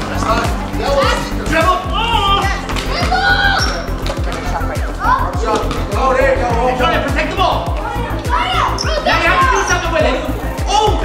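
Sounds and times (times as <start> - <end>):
music with bass beat: 0.0 - 11.0
voices in a gym: 0.0 - 11.0
basketball bouncing: 2.5 - 6.0.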